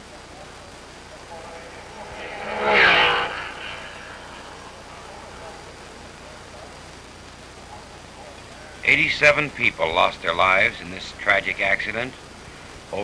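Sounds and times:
racing car passing by: 1.0s - 7.0s.

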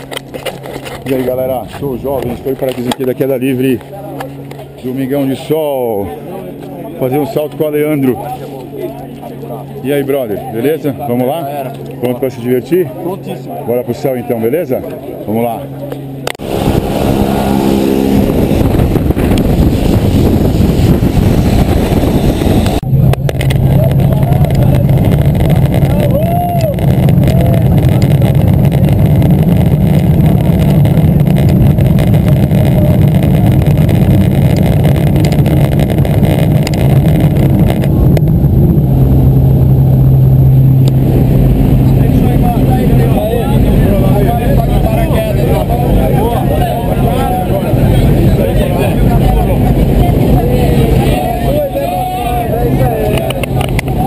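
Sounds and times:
light aircraft engine and propeller: 0.0s - 26.1s, 26.7s - 54.0s.

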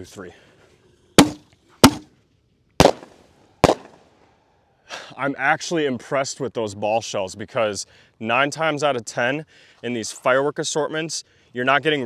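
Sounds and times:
shells bursting in the air: 1.2s - 2.1s, 2.8s - 4.1s.

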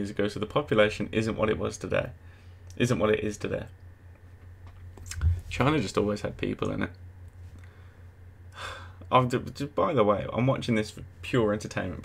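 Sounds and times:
man speaking: 0.0s - 2.2s, 5.1s - 7.0s, 9.1s - 12.0s
low steady hum: 0.0s - 12.0s
man breathing in: 7.6s - 9.0s.

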